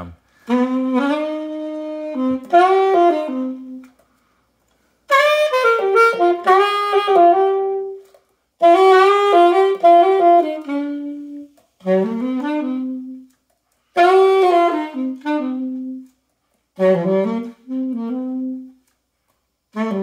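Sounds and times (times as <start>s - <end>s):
solo alto saxophone phrases: 0.0s - 4.0s, 5.1s - 16.2s, 16.8s - 18.9s, 19.7s - 20.0s.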